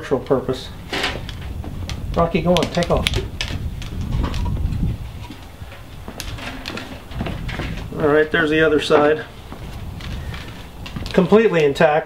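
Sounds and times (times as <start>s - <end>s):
wooden rack knocking and scraping: 6.1s - 8.2s.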